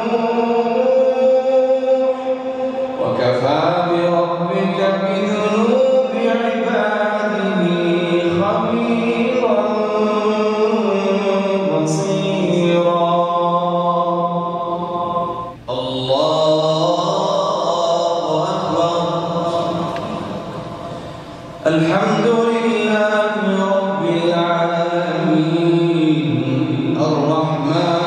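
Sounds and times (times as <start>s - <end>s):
man reciting melodically over microphone: 0.0s - 28.0s.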